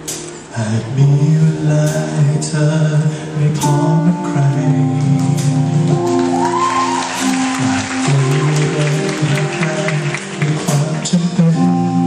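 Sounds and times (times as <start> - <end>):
rock band playing: 0.0 - 0.5, 2.9 - 12.0
man singing into microphone: 0.5 - 6.2, 7.2 - 12.0.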